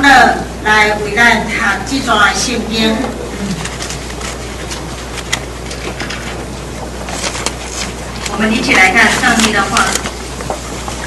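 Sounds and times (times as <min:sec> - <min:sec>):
woman speaking: 0:00.0 - 0:03.2, 0:08.3 - 0:10.1
steady low hum: 0:00.0 - 0:11.0.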